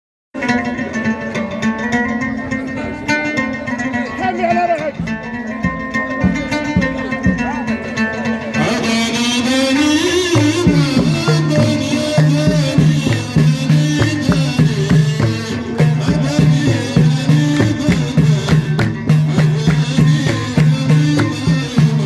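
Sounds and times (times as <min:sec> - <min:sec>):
hand drums: 0:00.4 - 0:22.0
plucked string instrument: 0:00.4 - 0:22.0
person singing: 0:08.5 - 0:22.0.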